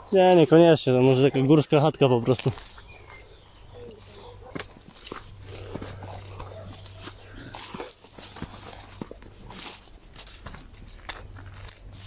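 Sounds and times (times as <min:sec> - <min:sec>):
footsteps through tall grass: 0:00.0 - 0:12.0.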